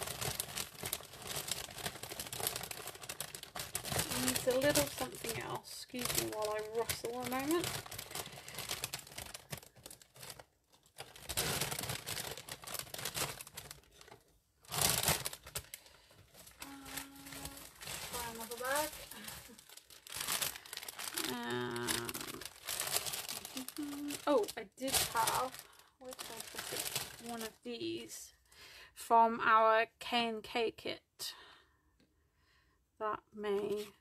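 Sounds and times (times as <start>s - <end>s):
bags rustling and crinkling: 0.0s - 27.6s.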